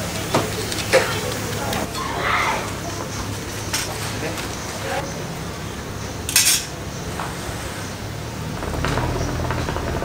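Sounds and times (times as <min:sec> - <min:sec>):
hookah low rumble: 0:07.4 - 0:10.0.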